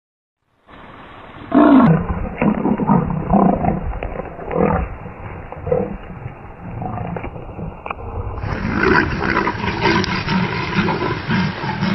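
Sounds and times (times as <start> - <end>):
leopards fighting with harsh calls: 8.4 - 11.9.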